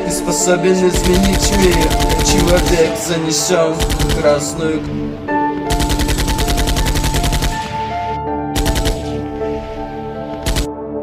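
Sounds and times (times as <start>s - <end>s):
automatic machine-gun fire: 1.0s - 3.1s, 3.8s - 4.6s, 5.7s - 8.0s, 8.6s - 9.3s, 10.4s - 10.7s.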